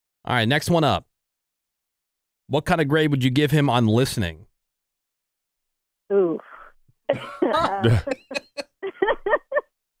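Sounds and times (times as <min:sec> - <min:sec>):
people laughing: 0:07.1 - 0:09.7.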